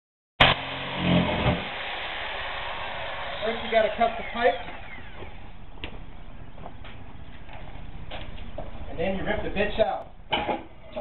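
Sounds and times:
power tool motor humming: 0.4s - 5.9s.

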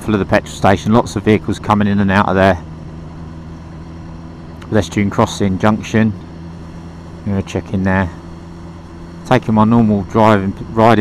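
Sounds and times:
motorcycle engine running: 0.0s - 11.0s
road and wind noise: 0.0s - 11.0s
man's voice: 9.3s - 11.0s.

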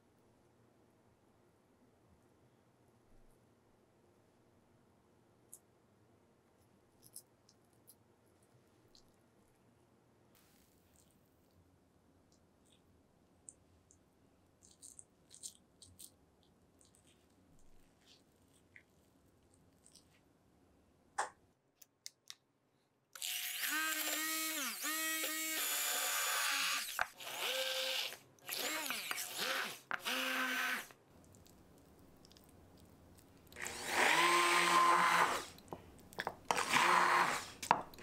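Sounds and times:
immersion blender motor: 23.2s - 30.9s, 33.6s - 35.6s, 36.5s - 37.5s.

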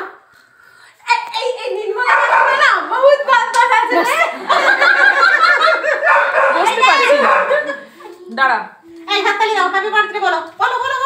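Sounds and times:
laughter: 3.9s - 6.4s, 7.0s - 8.0s.

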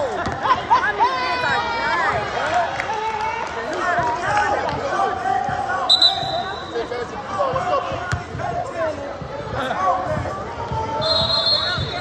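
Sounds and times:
talk and chatter: 0.0s - 12.0s
basketball bouncing on court: 0.1s - 0.5s.

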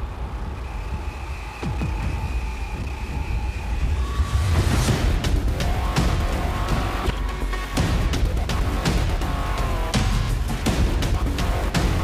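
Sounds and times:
deep rumbling drone: 0.0s - 12.0s.

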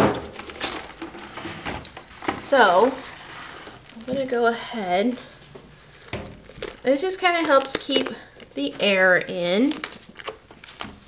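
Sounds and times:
plastic cling wrap crinkling: 0.0s - 11.0s.

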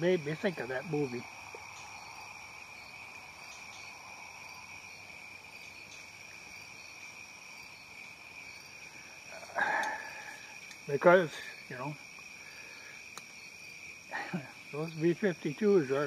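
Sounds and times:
insects trilling: 0.0s - 16.0s.

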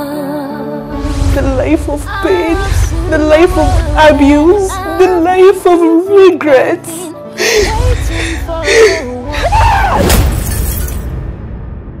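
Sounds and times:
dramatic trailer music: 0.0s - 12.0s
deep low rumble: 1.0s - 5.5s
crash of shattering glass: 10.0s - 11.3s.

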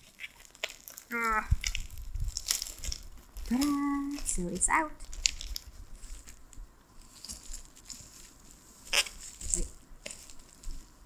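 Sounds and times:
bubble wrap crackling: 0.0s - 11.0s.

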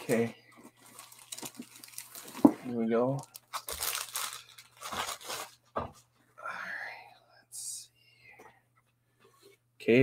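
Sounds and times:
packing material rustling: 0.7s - 5.7s.

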